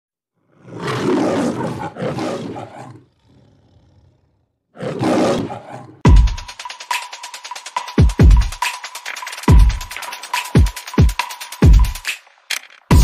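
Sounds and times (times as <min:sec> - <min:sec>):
deep rough roar: 0:00.4 - 0:06.0.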